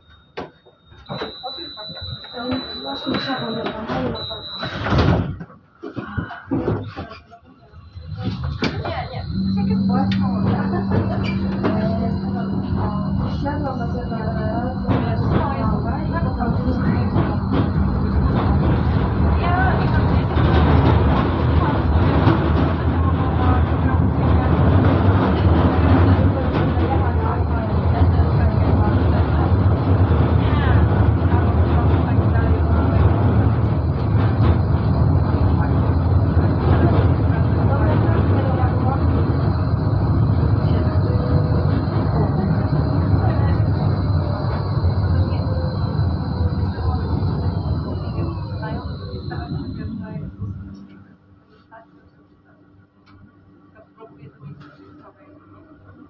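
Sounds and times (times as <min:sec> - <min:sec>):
tram running rumble: 0:01.0 - 0:51.4
high electric whine: 0:07.9 - 0:51.4.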